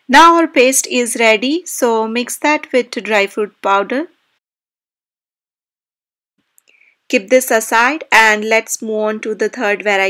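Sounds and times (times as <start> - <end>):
woman speaking: 0.0 - 4.2, 7.1 - 10.0.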